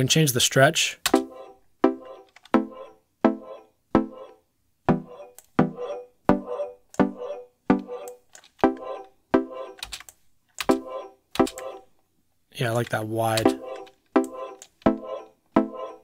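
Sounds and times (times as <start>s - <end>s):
synth pluck melody: 1.2s - 4.3s, 4.9s - 9.6s.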